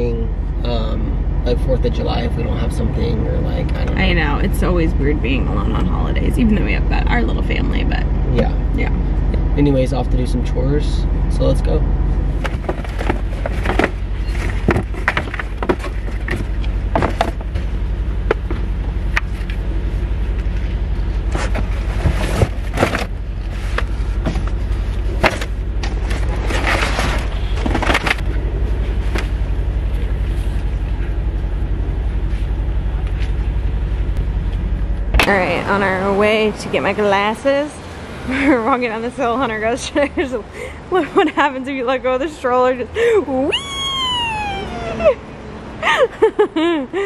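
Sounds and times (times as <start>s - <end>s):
steady low rumble: 0.0s - 37.7s.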